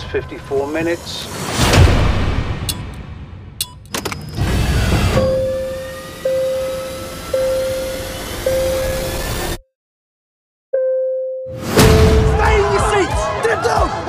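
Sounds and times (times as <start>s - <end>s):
pulsing steady tone: 5.1s - 9.6s
heavy cinematic hit: 11.6s - 12.8s.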